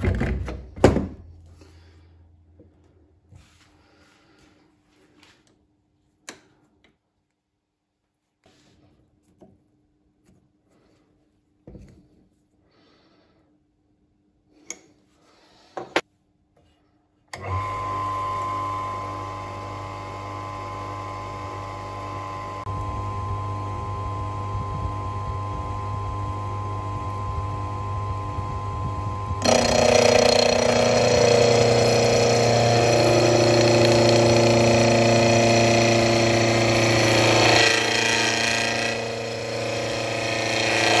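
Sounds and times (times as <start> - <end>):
milling machine motor whine: 17.4 - 41.0.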